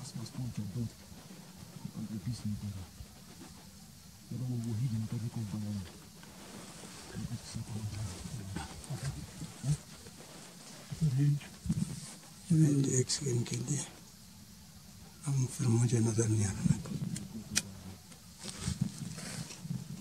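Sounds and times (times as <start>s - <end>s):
men talking quietly: 0.0s - 20.0s.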